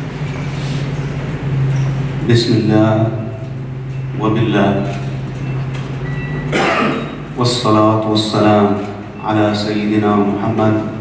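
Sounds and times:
steady low hum: 0.0 - 11.0
man clearing throat: 6.5 - 7.2.

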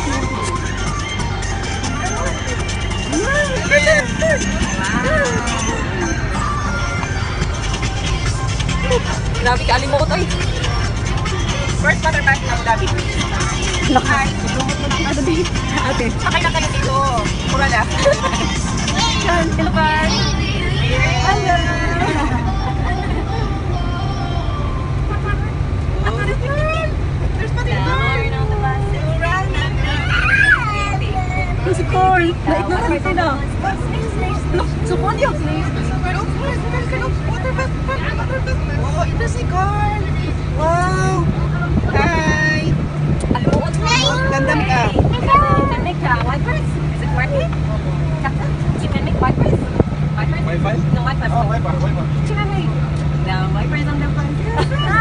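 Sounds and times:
boat engine droning: 0.0 - 55.0
people talking: 0.0 - 55.0
people's voices: 0.0 - 55.0.

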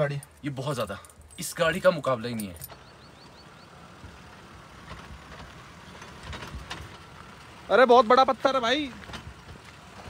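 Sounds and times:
distant engine rumble: 0.0 - 10.0.

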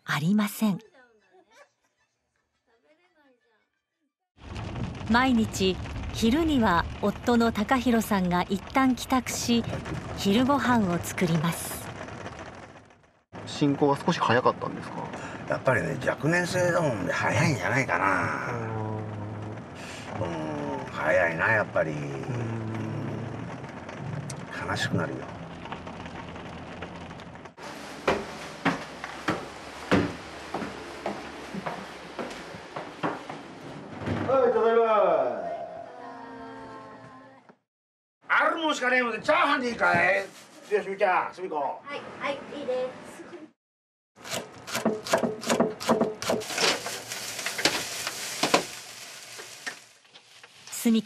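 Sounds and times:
car road and engine noise: 8.0 - 33.9
rice sizzling in a wok: 46.4 - 51.0.

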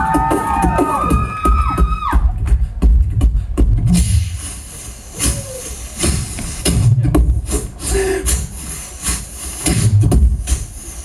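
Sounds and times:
beatboxing kick-drum beats: 0.0 - 11.0
steady beatboxed hiss: 0.0 - 11.0.

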